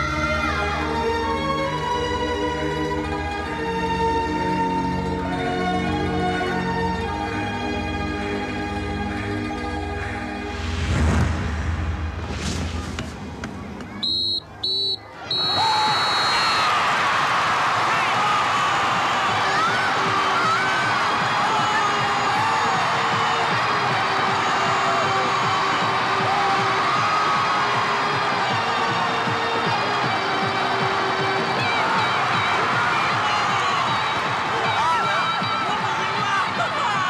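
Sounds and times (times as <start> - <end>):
music: 0.0 - 37.0
crowd cheering and shouting: 13.4 - 37.0
referee's whistle blasts: 14.0 - 16.8.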